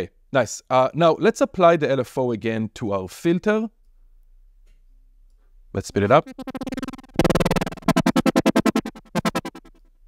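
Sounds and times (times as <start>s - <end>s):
pulsing synthesizer note: 6.0s - 9.8s.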